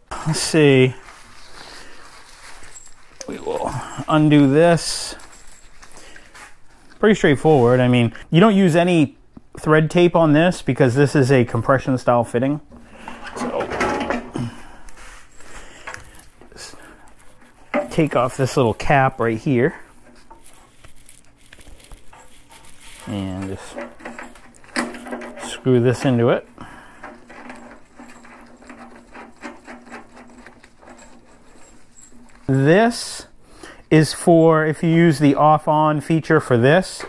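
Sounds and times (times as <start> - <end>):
gloved hands rustling and clicking: 14.8 - 32.6.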